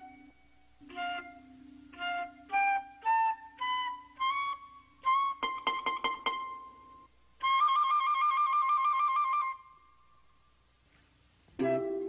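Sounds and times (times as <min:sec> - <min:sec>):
flute trilling: 0:00.0 - 0:10.2, 0:11.6 - 0:12.0.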